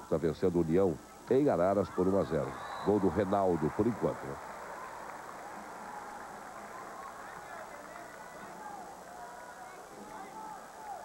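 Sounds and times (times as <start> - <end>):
crowd murmur: 1.9 - 11.0.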